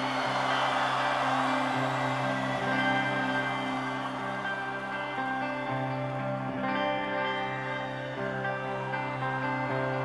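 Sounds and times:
rock band music: 0.0 - 10.0
sustained layered guitar notes: 0.0 - 10.0.

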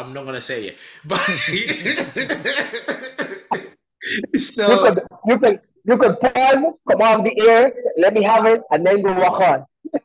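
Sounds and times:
men laughing hard: 1.1 - 3.7.

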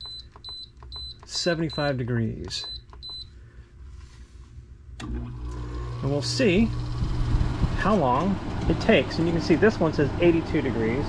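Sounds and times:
air conditioner beep: 0.0 - 3.4
air conditioner humming: 0.0 - 11.0.

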